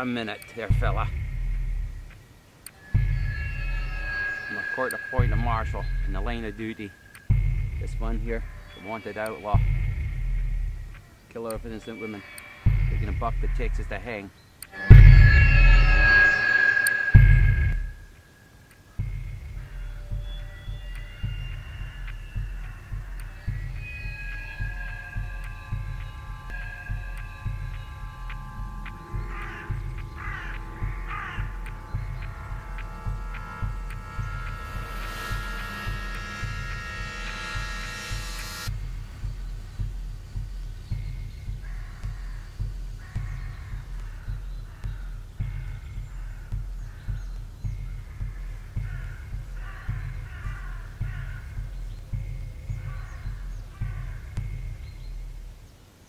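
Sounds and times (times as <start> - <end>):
suspense film score: 0.0 - 55.9
crow cawing: 2.8 - 7.2, 18.8 - 38.7, 40.8 - 55.2.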